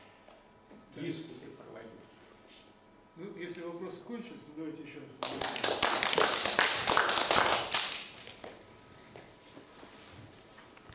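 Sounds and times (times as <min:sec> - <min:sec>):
audience clapping: 0:05.2 - 0:08.5.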